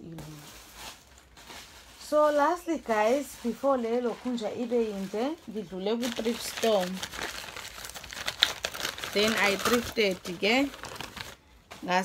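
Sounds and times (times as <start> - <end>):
plastic wrapping crinkling: 0.0 - 12.0.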